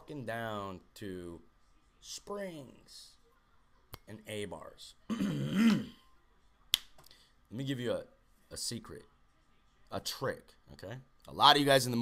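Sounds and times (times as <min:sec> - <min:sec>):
man clearing his throat: 0:05.1 - 0:06.0.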